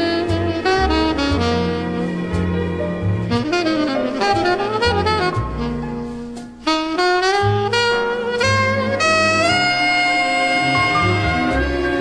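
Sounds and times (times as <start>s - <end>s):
bass notes: 0.0s - 12.0s
jazz saxophone ballad: 0.0s - 12.0s.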